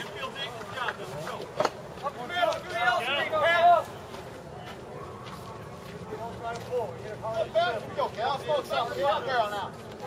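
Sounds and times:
players shouting chatter calls: 0.0s - 10.0s.

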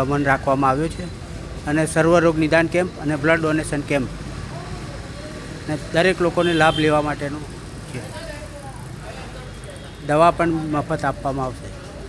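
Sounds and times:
man speaking: 0.0s - 4.2s, 5.6s - 8.6s, 10.0s - 11.9s.

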